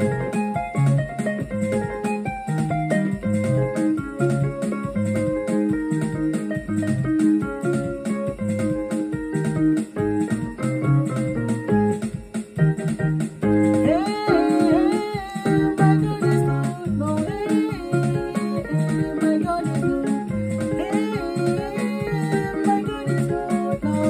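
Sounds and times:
electronic keyboard playing upbeat tune: 0.0 - 24.0
man singing: 13.9 - 16.5.

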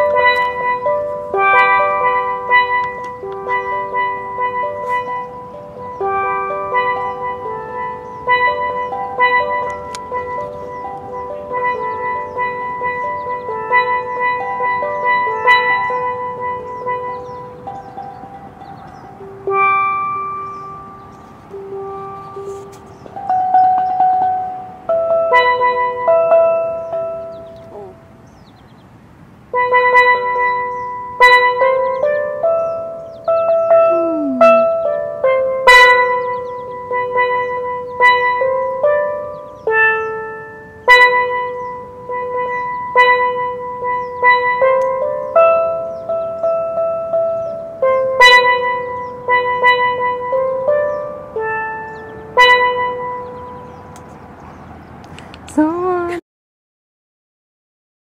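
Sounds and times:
steel pan melody: 0.0 - 56.2.

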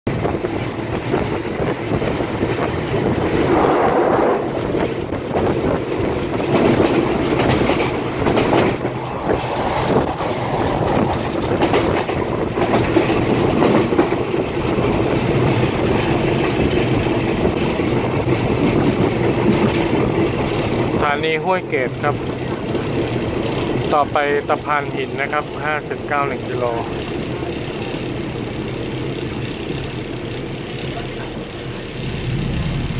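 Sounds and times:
train rumble: 0.1 - 32.9
wheels clattering over rail joints: 0.1 - 32.9.

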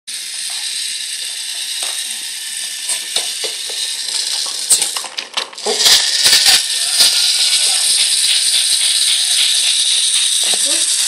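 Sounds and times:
toy train clattering: 0.1 - 11.0
toy train motor whirring: 0.1 - 11.0
wheels clicking on wooden track: 2.8 - 11.0.

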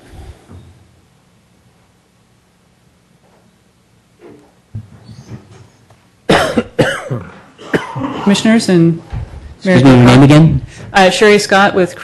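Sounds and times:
person coughing: 6.3 - 8.4.

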